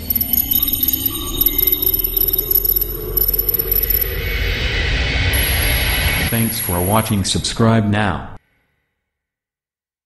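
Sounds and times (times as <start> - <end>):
high stuttering beeps: 0.0 - 4.6, 5.4 - 7.0
low drone: 0.0 - 7.4.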